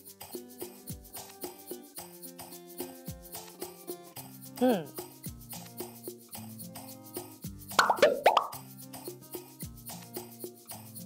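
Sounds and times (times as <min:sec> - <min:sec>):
background music: 0:00.0 - 0:11.0
bubbly plop sound effects: 0:07.8 - 0:08.6.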